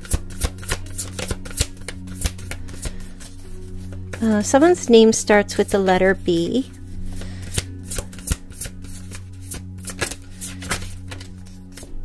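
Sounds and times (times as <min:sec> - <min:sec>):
cards being shuffled: 0:00.0 - 0:04.4, 0:06.8 - 0:12.0
soft background music: 0:00.0 - 0:12.0.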